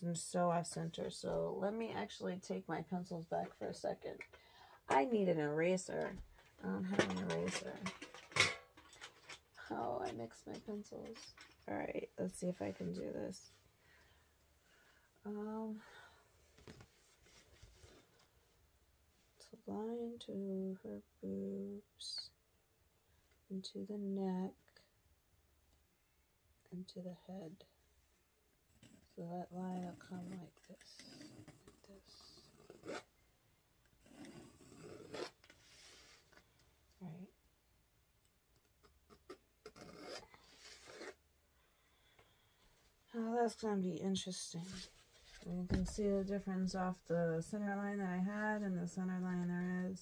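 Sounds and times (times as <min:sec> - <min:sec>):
pencil and paper scrapes: 0:38.8 - 0:41.2.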